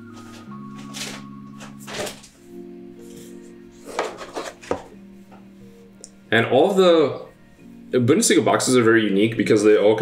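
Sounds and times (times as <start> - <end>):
quiet background music: 0.0 - 10.0
paper rustling in cardboard box: 0.1 - 2.4.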